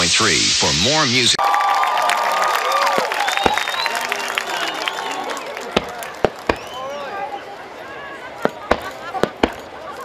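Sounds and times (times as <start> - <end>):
fireworks bursting: 2.8 - 4.0, 5.6 - 6.9, 8.4 - 9.9.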